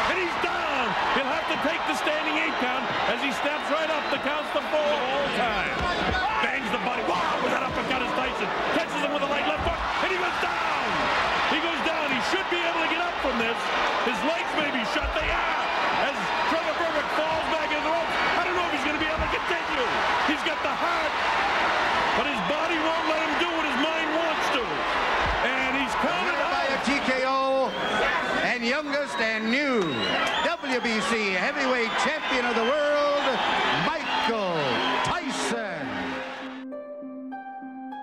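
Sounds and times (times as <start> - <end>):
crowd cheering and shouting: 0.0 - 36.6.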